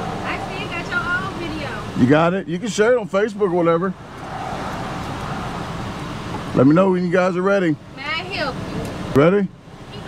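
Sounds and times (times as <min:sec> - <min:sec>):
steady traffic noise: 0:00.0 - 0:10.0.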